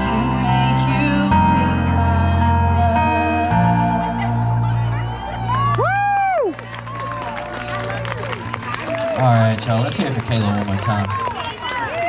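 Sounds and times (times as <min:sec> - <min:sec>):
woman singing wavering notes: 0:00.0 - 0:05.5
backing track with bass notes: 0:00.0 - 0:11.2
crowd cheering: 0:04.6 - 0:12.0
loud whoop: 0:05.0 - 0:09.2.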